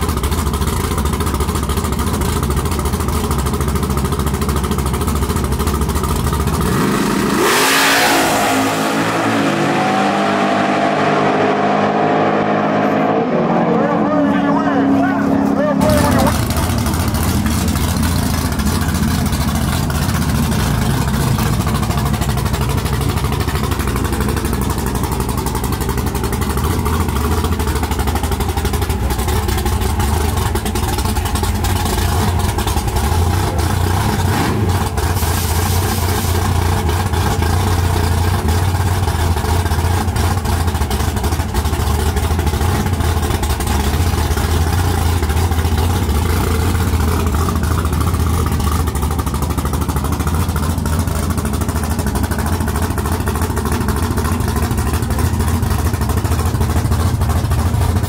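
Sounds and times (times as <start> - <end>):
car engine idling loudly: 0.0 - 58.0.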